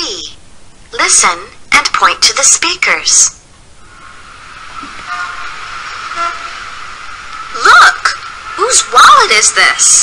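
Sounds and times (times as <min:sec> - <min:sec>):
traffic noise: 0:03.5 - 0:10.0
car horn toots: 0:05.0 - 0:05.5, 0:06.1 - 0:06.6.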